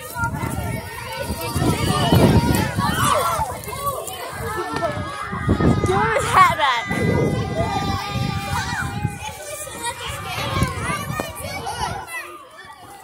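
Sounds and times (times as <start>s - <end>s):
children talking and calling out: 0.0s - 13.0s.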